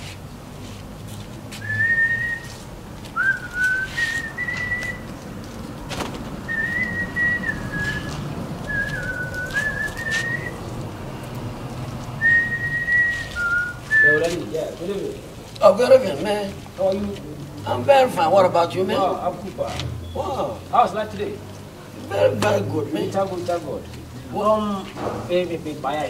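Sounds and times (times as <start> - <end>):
man whistling a tune: 1.6 - 2.6, 3.2 - 5.1, 6.5 - 10.6, 12.2 - 14.3.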